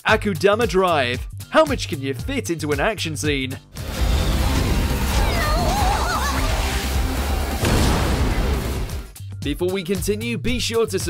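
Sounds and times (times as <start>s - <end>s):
soundtrack music: 3.7s - 9.6s
wavering high cry: 5.1s - 6.7s.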